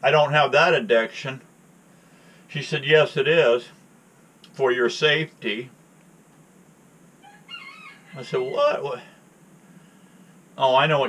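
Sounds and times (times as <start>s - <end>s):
rooster crowing: 7.2s - 9.2s.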